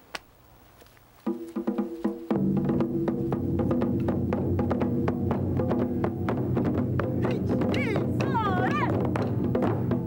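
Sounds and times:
taiko drum ensemble playing: 1.3 - 10.0.

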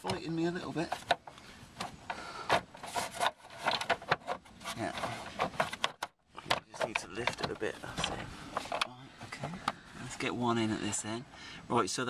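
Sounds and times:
plastic rubbing and scraping: 0.0 - 11.0
plastic clicks and knocks: 3.2 - 8.9.

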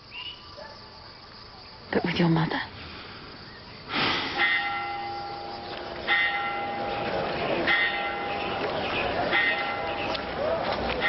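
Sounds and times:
bell tolling: 4.4 - 8.6.

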